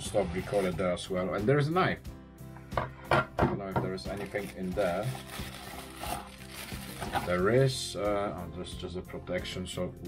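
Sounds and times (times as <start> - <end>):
quiet background music: 0.0 - 10.0
plastic wrap rustling: 0.3 - 0.8, 4.0 - 7.7.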